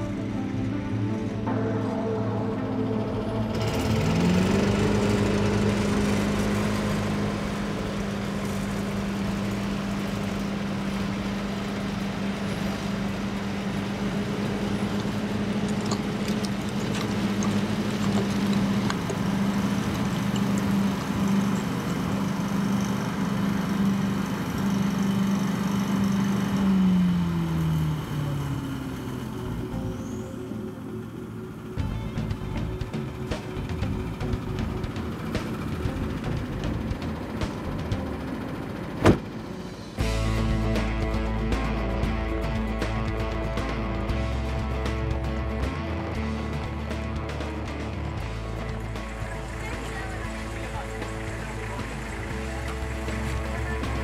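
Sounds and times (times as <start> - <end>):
background music: 0.0 - 54.0
motor hum: 0.0 - 54.0.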